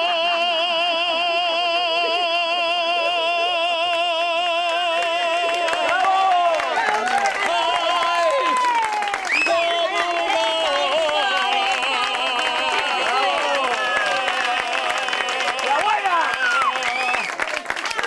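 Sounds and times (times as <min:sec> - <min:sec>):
audience clapping and cheering: 0:00.0 - 0:18.0.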